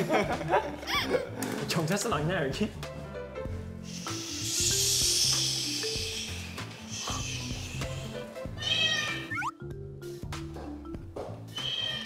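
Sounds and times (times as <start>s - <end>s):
background music: 0.0s - 12.0s
hissing noise: 3.8s - 8.2s
cartoon meow sound effect: 8.6s - 9.5s.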